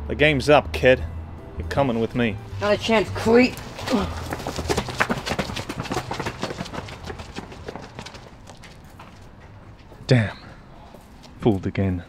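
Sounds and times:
running footsteps on pavement: 0:02.6 - 0:11.6.

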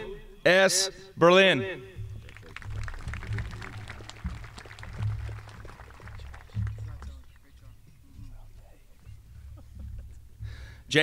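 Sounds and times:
crowd clapping: 0:02.0 - 0:08.0.

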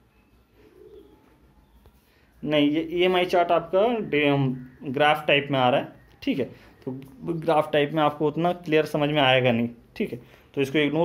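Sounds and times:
pigeon cooing: 0:00.2 - 0:07.6.

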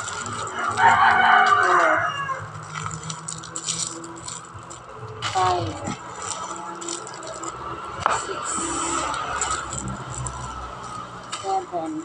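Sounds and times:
person counting: 0:00.0 - 0:10.5, 0:11.3 - 0:12.0
plastic packaging rustling: 0:00.0 - 0:12.0.

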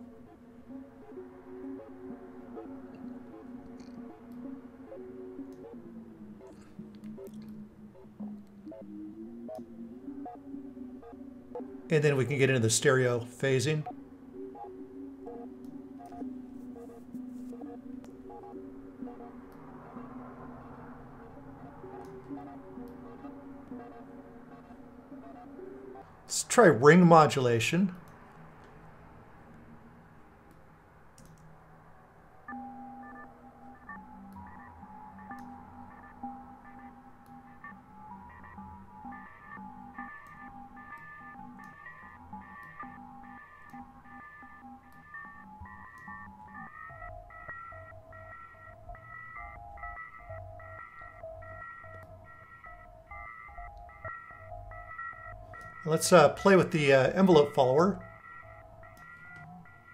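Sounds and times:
ring-modulated tones chopped rhythmically: 0:00.0 - 0:27.8, 0:32.4 - 0:59.9
electronic music loop: 0:00.0 - 0:28.2, 0:32.5 - 0:59.9.

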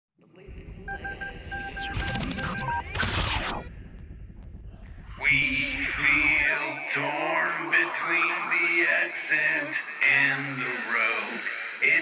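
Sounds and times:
low rumbling noise: 0:00.4 - 0:11.8
rapid electronic beeps: 0:00.5 - 0:12.0.

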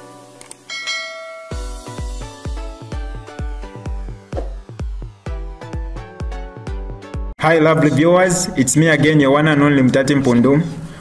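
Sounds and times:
notification bell ding: 0:00.7 - 0:02.1
electronic music with heavy bass: 0:01.5 - 0:07.3.

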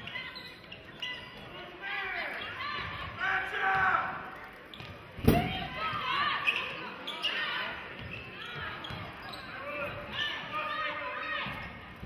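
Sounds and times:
voices in a large gym: 0:00.0 - 0:12.0.

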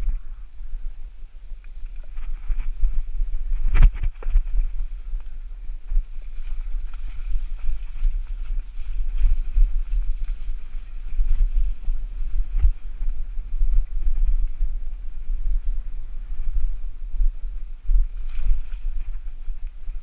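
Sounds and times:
wind and tyres rumbling: 0:00.0 - 0:20.0
bike rattling over bumps: 0:01.8 - 0:20.0.

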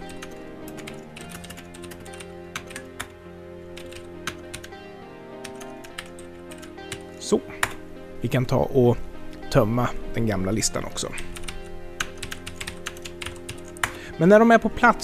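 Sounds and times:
computer keyboard typing: 0:00.0 - 0:03.1, 0:03.8 - 0:04.7, 0:05.4 - 0:07.0, 0:11.2 - 0:14.0
soft background music: 0:00.0 - 0:15.0.

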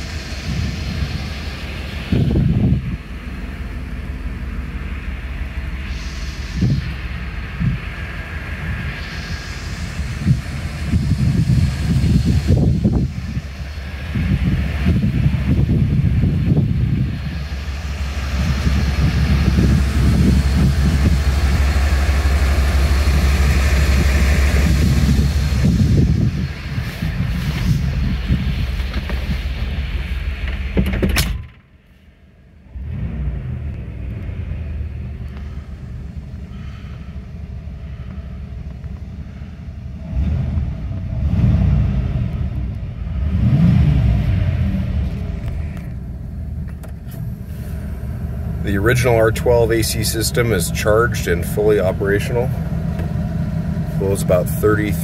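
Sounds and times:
wind buffeting microphone: 0:00.0 - 0:31.5.

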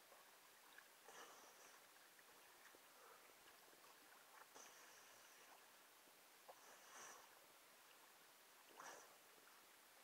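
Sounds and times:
soft water swish: 0:00.0 - 0:10.0.

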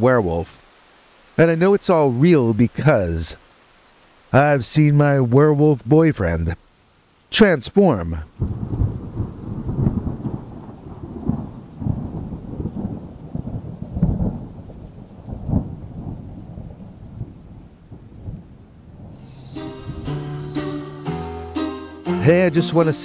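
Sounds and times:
rain: 0:00.0 - 0:23.0
thunder rumbling: 0:08.4 - 0:20.8
music: 0:19.2 - 0:23.0.

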